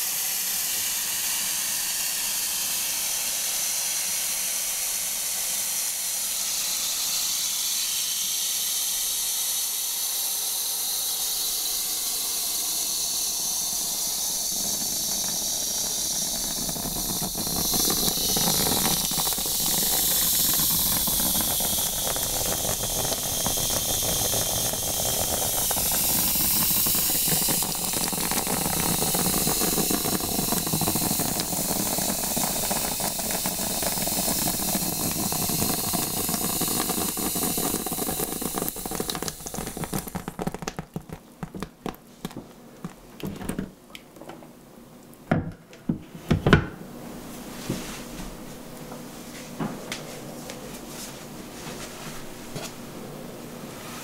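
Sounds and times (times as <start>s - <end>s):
water sprayer hissing on hair: 0.0s - 41.8s.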